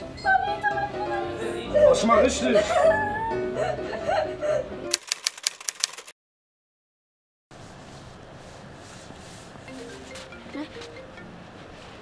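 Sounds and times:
music: 0:00.0 - 0:04.9, 0:09.7 - 0:12.0
typewriter key clicks: 0:04.9 - 0:06.1
voice: 0:10.6 - 0:10.8.

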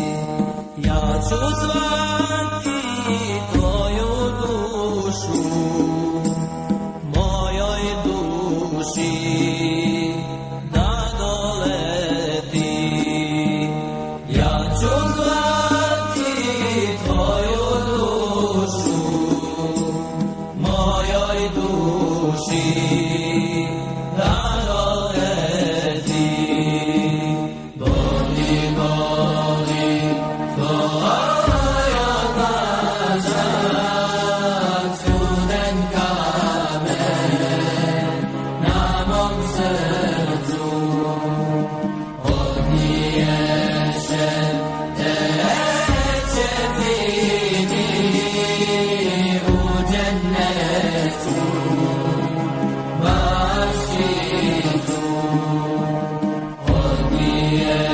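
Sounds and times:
person chanting: 0:00.0 - 0:06.4, 0:07.0 - 0:41.5, 0:53.0 - 0:55.8, 0:56.7 - 0:57.9.

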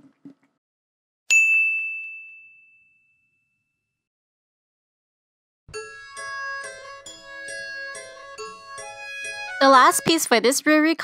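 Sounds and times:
bright bell-like ding: 0:01.3 - 0:03.8.

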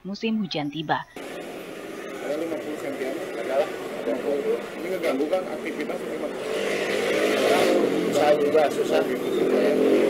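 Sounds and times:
motor engine running: 0:01.2 - 0:10.0.

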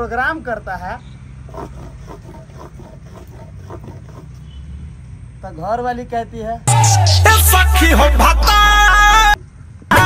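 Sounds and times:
wood rubbing against log: 0:01.5 - 0:04.5.

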